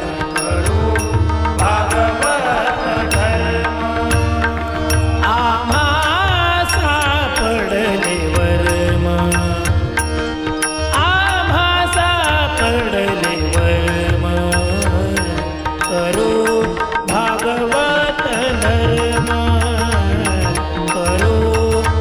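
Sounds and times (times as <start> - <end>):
man singing devotional song: 0.0 - 22.0
sharp percussive beats: 0.0 - 22.0
sustained instrumental accompaniment: 0.0 - 22.0.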